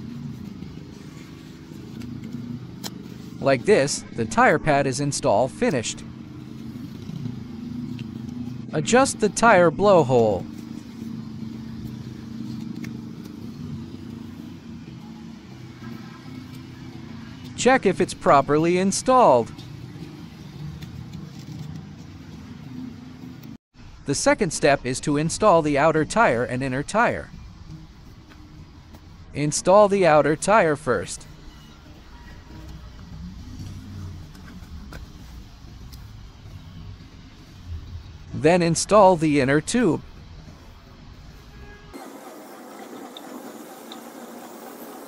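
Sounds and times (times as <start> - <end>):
outdoor background rumble: 31.2 - 38.5.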